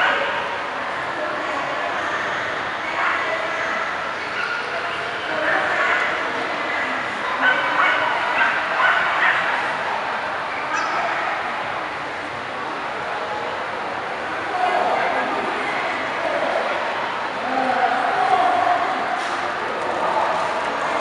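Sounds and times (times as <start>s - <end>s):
crowd chatter: 0.0s - 21.0s
dogs barking: 7.4s - 9.7s.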